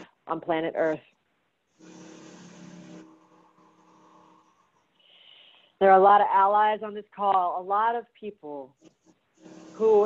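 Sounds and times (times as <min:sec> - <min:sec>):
hum with held tones: 0:01.8 - 0:04.8, 0:08.8 - 0:10.0.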